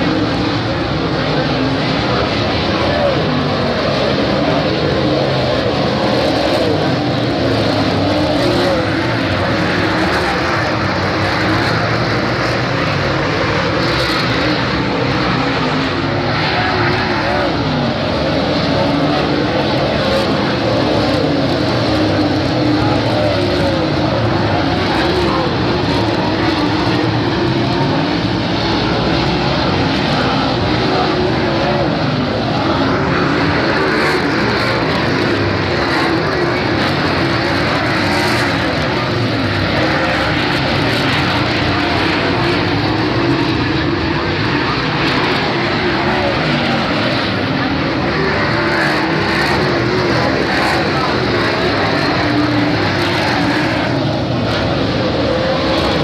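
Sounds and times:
race car engines roaring: 0:00.0 - 0:56.0.

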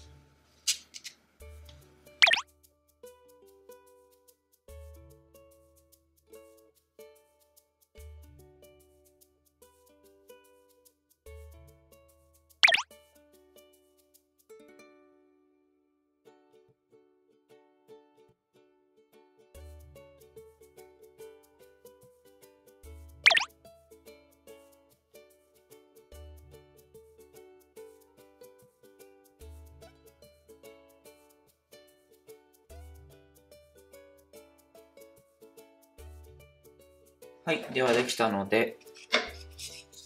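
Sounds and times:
ukulele background music: 0:00.0 - 0:40.0
cartoon plop sound effect: 0:02.2 - 0:02.4, 0:12.6 - 0:12.8, 0:23.3 - 0:23.5
plucked background music: 0:02.2 - 0:02.4, 0:23.3 - 0:23.5.

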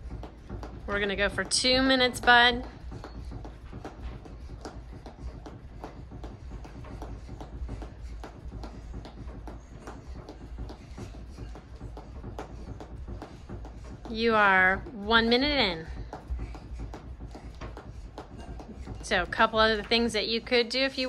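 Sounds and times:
jump rope tapping on carpet: 0:00.0 - 0:20.8
low steady hum: 0:00.0 - 0:21.0.

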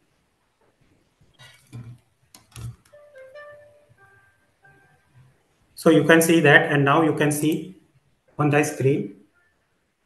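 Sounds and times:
soft instrumental relaxation music: 0:02.4 - 0:05.7.

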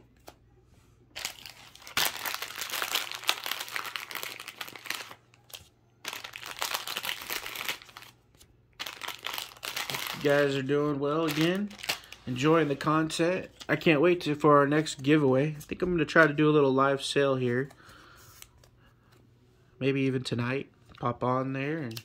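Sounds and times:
wrappers crinkling: 0:01.2 - 0:12.9.

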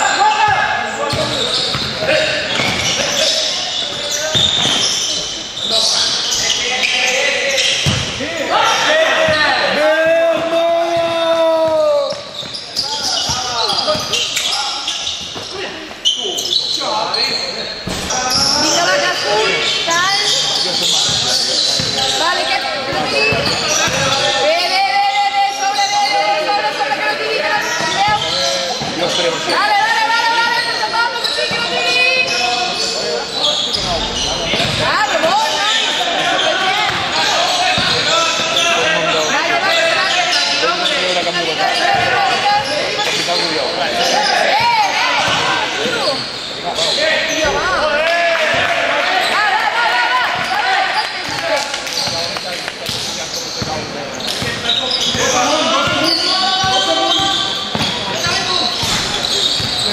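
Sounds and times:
many voices echoing: 0:00.0 - 0:59.9
basketball bouncing: 0:01.1 - 0:03.0, 0:07.8 - 0:08.2, 0:23.0 - 0:24.2, 0:33.8 - 0:35.4, 0:56.6 - 0:59.8.

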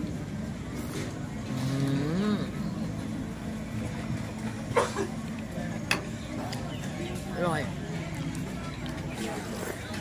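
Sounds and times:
steady background noise: 0:00.0 - 0:10.0
man humming mmm while chewing: 0:01.4 - 0:02.8.

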